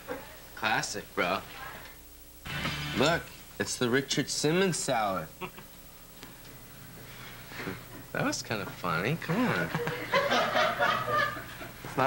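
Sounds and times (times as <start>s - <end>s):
man laughing: 9.6s - 11.8s.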